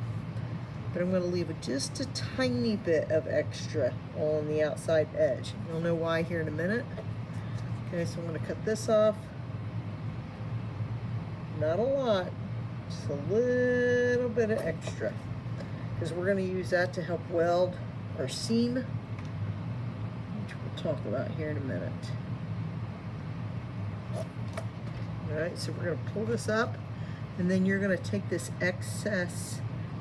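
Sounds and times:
low background hum: 0.0 - 30.0.

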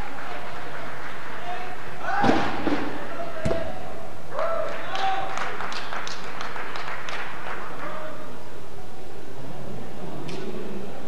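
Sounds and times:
voices echoing in a large hall: 0.0 - 11.0.

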